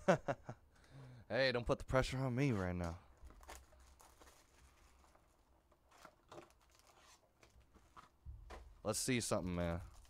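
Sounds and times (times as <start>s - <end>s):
cardboard box and foil pack rustling: 3.1s - 8.7s, 9.7s - 10.0s.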